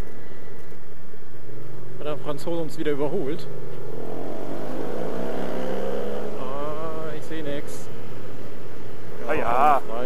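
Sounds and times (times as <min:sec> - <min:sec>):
riding noise rush: 0:03.0 - 0:10.0
motorcycle engine running: 0:03.4 - 0:09.0.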